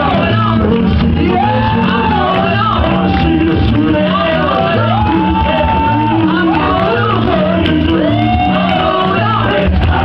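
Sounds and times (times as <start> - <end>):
band playing worship music: 0.0 - 10.0
voices singing and shouting: 0.0 - 10.0.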